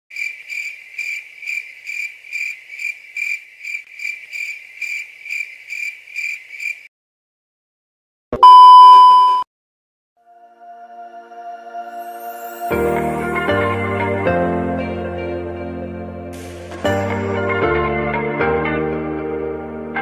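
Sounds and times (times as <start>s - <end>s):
insect-like chirping: 0.1s - 6.9s
high beep: 8.4s - 9.5s.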